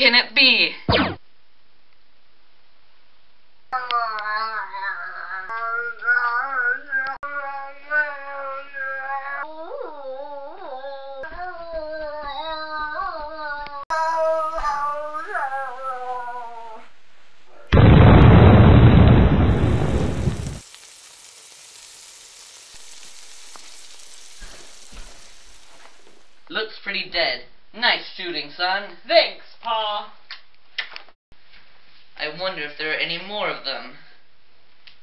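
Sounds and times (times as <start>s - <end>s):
explosion sound effect: 0.9s - 1.2s, 17.7s - 26.4s
faint steady hiss: 15.4s - 18.2s, 19.4s - 28.6s.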